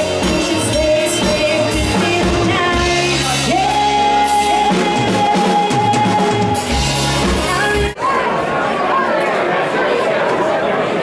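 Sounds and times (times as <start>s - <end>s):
female singer: 0.0s - 6.8s
rock band playing: 0.0s - 8.0s.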